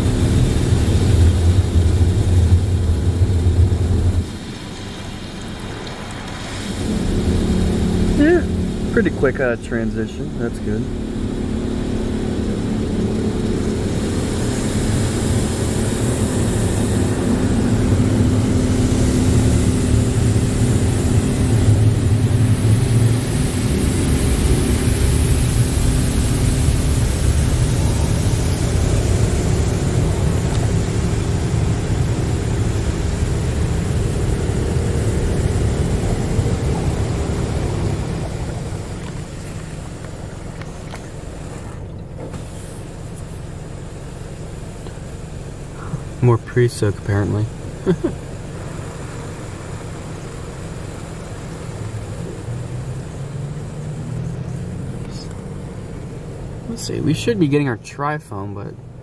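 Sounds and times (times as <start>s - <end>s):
steady machine hum: 0.0s - 5.2s, 6.5s - 57.5s
car wash water jets spraying: 0.0s - 59.0s.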